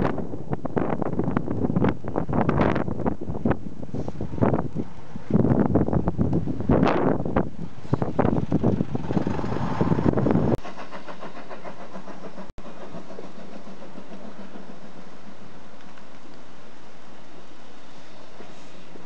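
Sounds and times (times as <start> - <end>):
wind buffeting microphone: 0.0 - 12.5
bus engine running: 4.0 - 10.6.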